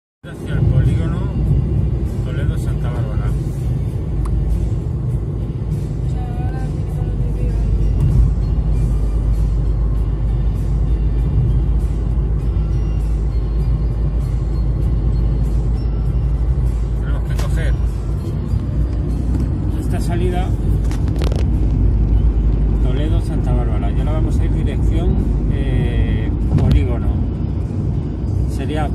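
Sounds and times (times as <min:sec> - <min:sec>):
car cabin road and engine rumble: 0:00.2 - 0:28.9.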